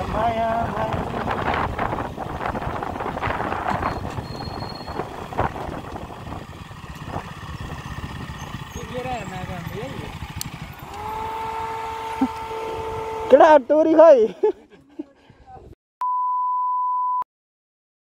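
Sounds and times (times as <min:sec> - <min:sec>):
motorcycle engine running: 0:00.0 - 0:14.0
road and wind noise: 0:00.0 - 0:15.8.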